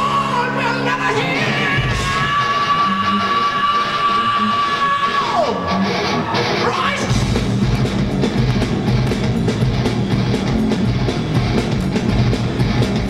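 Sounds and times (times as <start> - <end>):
metal band playing live: 0.0 - 13.0.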